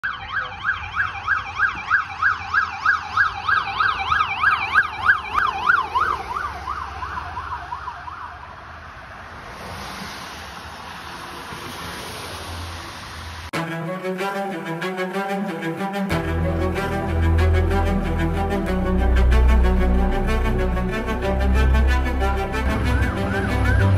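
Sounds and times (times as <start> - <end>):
electronic siren in yelp mode: 0.0 - 8.7, 19.6 - 23.9.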